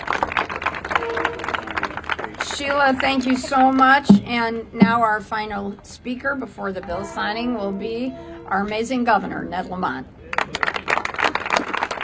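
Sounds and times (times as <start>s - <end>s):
small crowd applauding: 0.0s - 4.1s, 10.2s - 12.0s.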